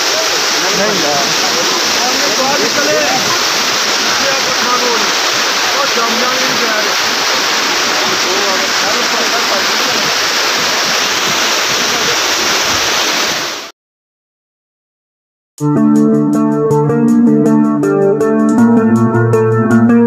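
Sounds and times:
people talking: 0:00.0 - 0:11.0, 0:11.7 - 0:12.5
river rushing over rocks: 0:00.0 - 0:13.7.

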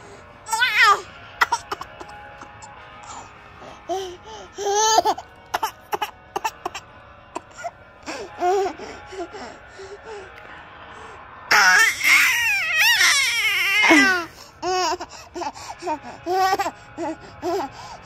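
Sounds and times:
baby giggling and squealing: 0:00.5 - 0:03.3, 0:03.9 - 0:06.8, 0:11.5 - 0:17.8.

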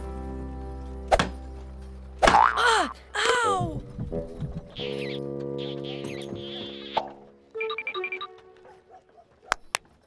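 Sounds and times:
background music: 0:00.0 - 0:09.5.

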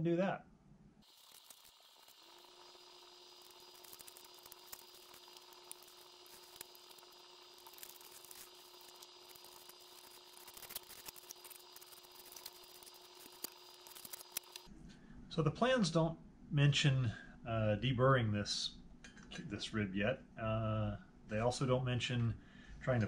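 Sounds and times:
steady low hum: 0:00.5 - 0:23.0.

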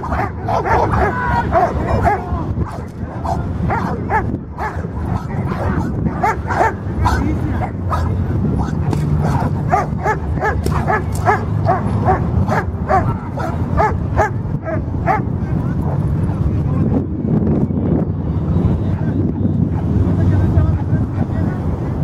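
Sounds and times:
dog barking: 0:00.0 - 0:16.0
outdoor crowd voices: 0:00.0 - 0:22.0.

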